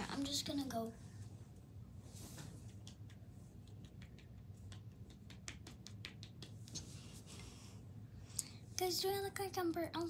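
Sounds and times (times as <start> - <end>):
faint steady hum: 0.0 - 10.0
marker tapping against face: 2.5 - 6.9.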